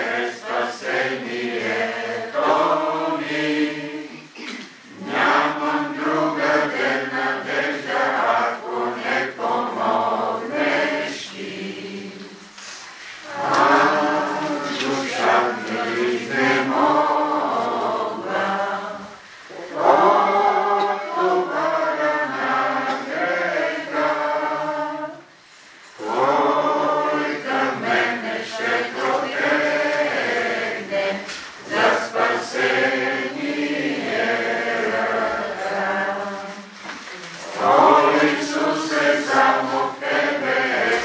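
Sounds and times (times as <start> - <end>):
congregation singing a hymn: 0.0 - 41.0.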